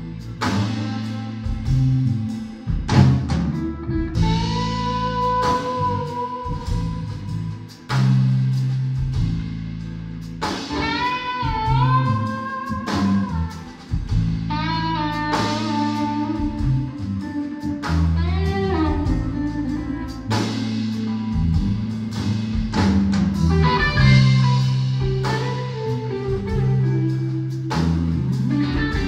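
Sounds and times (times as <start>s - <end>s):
drum kit: 0.0s - 29.0s
electric bass: 0.0s - 29.0s
electric guitar bending notes: 0.0s - 29.0s.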